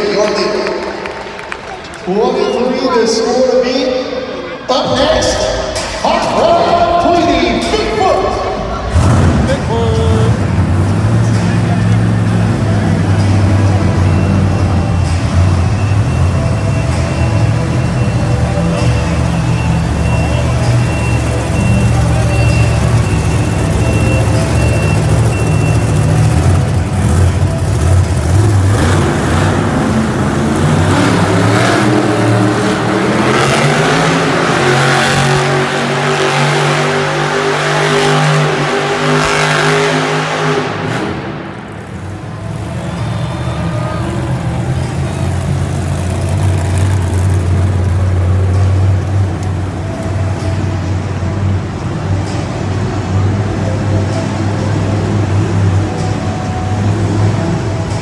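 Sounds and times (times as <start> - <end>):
monster truck engine revving: 7.0 - 58.0.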